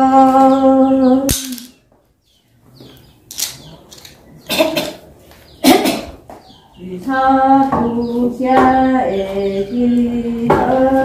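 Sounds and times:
horn pieces clacking on concrete: 1.3s - 1.8s, 3.3s - 4.2s.

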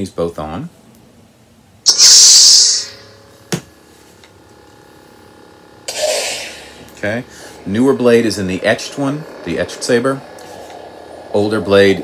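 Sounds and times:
faint steady electric hum: 0.0s - 12.0s
lightsaber ignition hissing surge: 1.8s - 3.5s, 5.8s - 12.0s.

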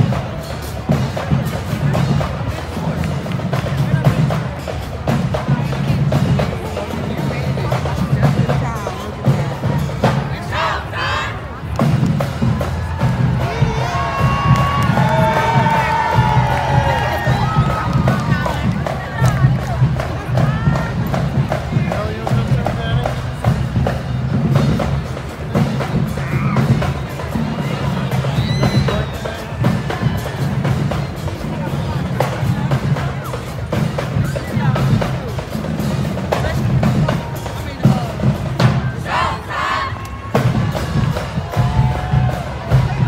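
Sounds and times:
crowd voices and shouts: 0.0s - 43.0s
driving drum beat: 0.0s - 43.0s
marching band music: 0.0s - 43.0s
crowd cheering shout: 12.5s - 19.6s, 27.6s - 30.8s, 39.1s - 43.0s.

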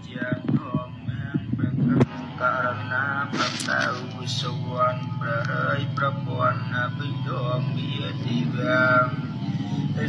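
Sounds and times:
background music: 0.0s - 10.0s
voice singing gliding notes: 0.0s - 10.0s.

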